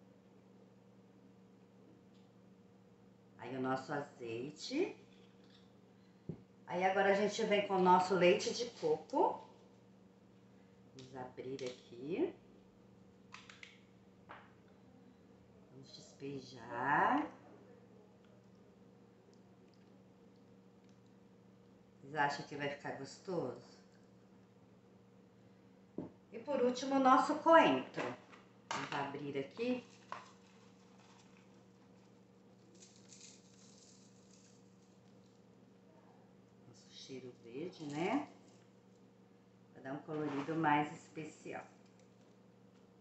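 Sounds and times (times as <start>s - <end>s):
faint steady hum: 0.0s - 43.0s
light rustling of herbs: 29.6s - 35.5s.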